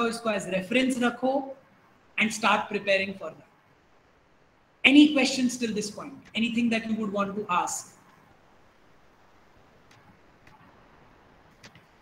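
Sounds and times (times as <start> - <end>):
faint room hiss: 0.0 - 12.0
soft clicks: 11.5 - 12.0.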